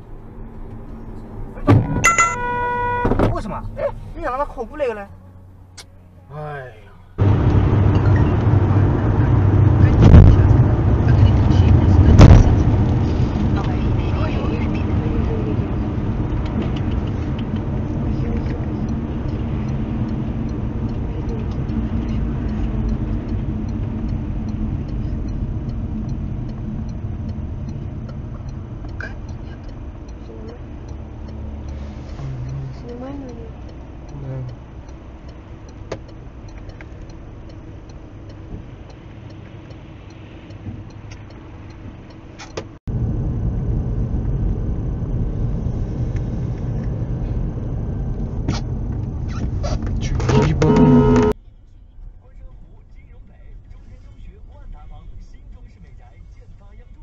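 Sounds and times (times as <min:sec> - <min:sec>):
car engine hum: 0:00.0 - 0:57.0
loud thumps: 0:01.6 - 0:03.4, 0:12.1 - 0:12.7.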